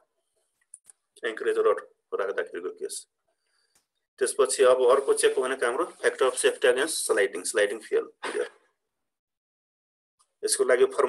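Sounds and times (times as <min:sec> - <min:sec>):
man clearing his throat: 0:08.2 - 0:08.6.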